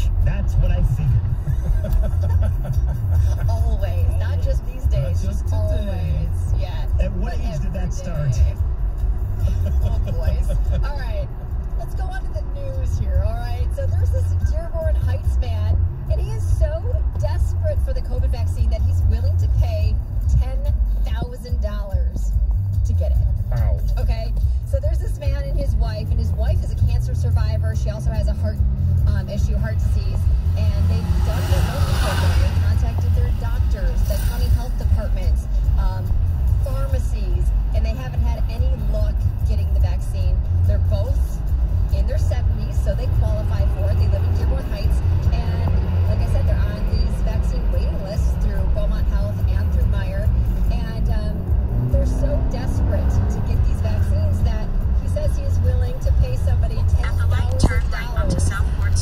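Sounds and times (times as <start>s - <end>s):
car engine and tyre rumble: 0.0s - 59.0s
car radio talk and music: 0.0s - 59.0s.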